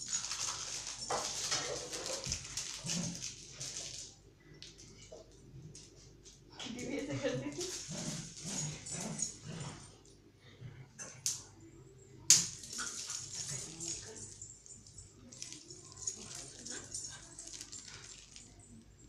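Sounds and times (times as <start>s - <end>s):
dog moving on tiled floor: 0.0s - 6.4s, 7.5s - 9.9s, 12.4s - 18.6s.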